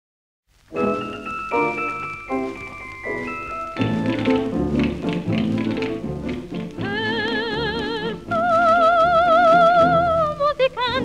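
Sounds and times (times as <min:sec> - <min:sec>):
dance orchestra playing: 0:00.8 - 0:08.3.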